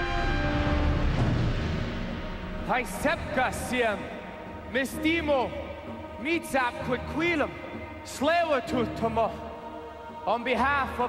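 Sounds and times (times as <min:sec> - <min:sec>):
low rumbling drone: 0:00.0 - 0:06.2
orchestral horn-like chord: 0:00.0 - 0:06.8.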